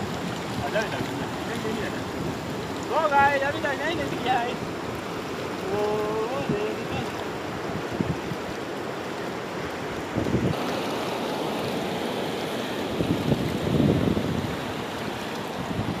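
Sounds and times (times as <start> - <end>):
wind buffeting microphone: 0.0 - 8.6, 9.7 - 10.6, 12.8 - 16.0
river rushing over rocks: 0.0 - 16.0.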